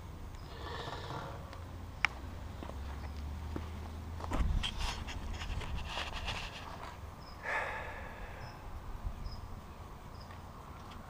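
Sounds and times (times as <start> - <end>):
footsteps on pavement: 1.5 - 7.0
knocks and scuffs: 2.1 - 7.0.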